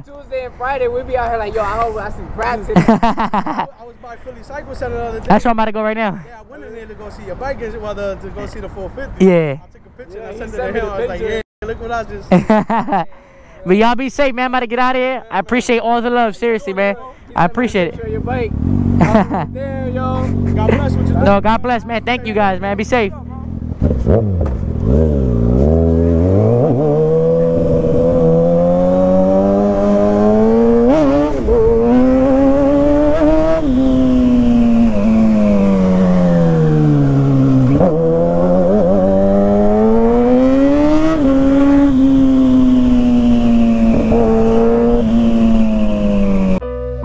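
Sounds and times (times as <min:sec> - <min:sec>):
motorcycle engine accelerating: 0:17.8 - 0:47.0.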